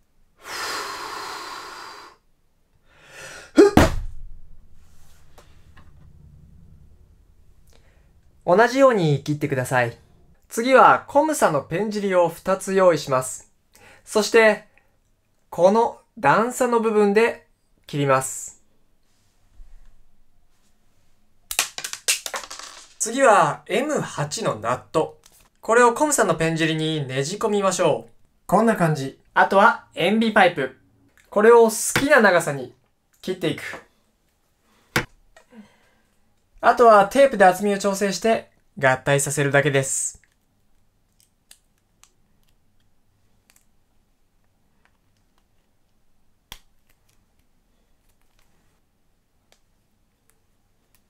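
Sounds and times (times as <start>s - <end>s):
plastic pen parts clicking: 41.1s - 43.7s.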